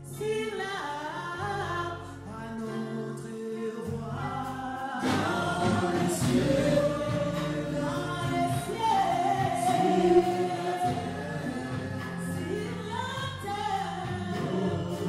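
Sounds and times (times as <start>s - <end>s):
musical accompaniment: 0.0s - 15.0s
congregation singing worship song: 0.2s - 15.0s.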